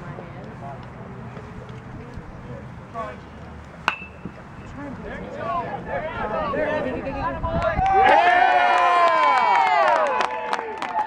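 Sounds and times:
metal bat ping on ball: 0:03.9 - 0:04.4.

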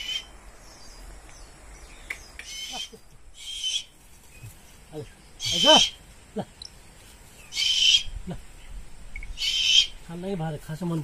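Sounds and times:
owl hissing: 0:02.1 - 0:04.0, 0:05.4 - 0:06.0, 0:07.4 - 0:10.1.

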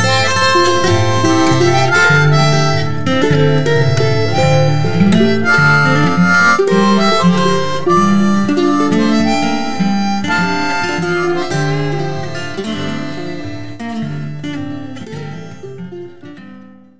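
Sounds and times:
harmonica melody: 0:00.0 - 0:16.0
guitar accompaniment: 0:00.0 - 0:16.9.

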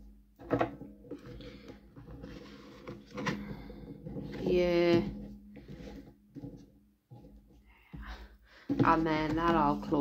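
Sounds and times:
card sliding and rubbing: 0:02.2 - 0:03.2.

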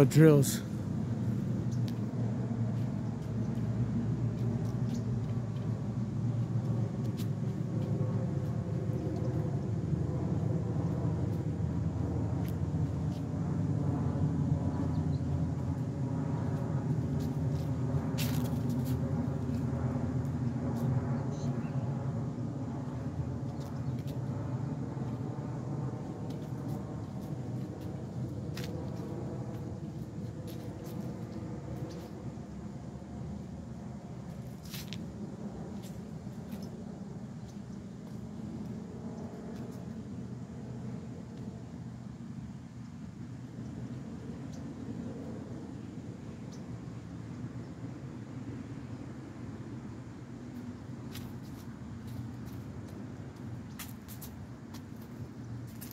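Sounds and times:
low mechanical hum: 0:00.0 - 0:55.9.

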